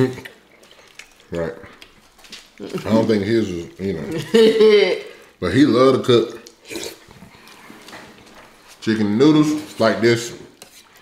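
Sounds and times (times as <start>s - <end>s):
chewing and wet mouth clicks: 0.0s - 2.9s, 6.4s - 7.6s
person speaking: 2.5s - 7.0s, 8.7s - 10.9s.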